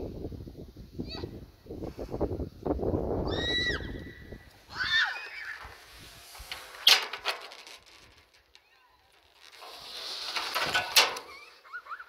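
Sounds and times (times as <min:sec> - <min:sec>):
wind rumbling on microphone: 0:00.0 - 0:07.0.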